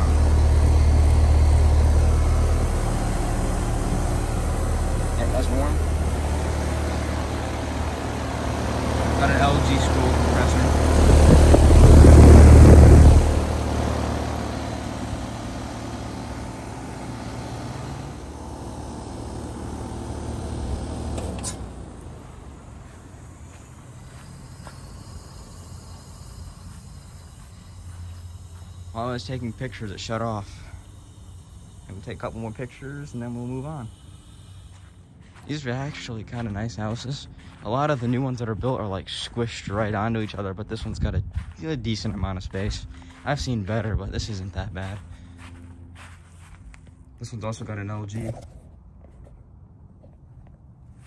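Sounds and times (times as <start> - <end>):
heat pump humming: 0.0 - 40.6.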